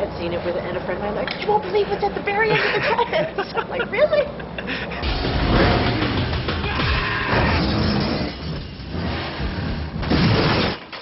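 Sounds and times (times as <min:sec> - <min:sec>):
heavy vehicle noise: 0:04.0 - 0:10.1.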